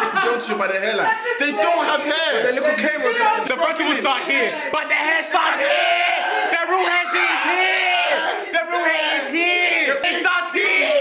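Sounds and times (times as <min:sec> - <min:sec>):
young men shouting: 0:00.0 - 0:11.0.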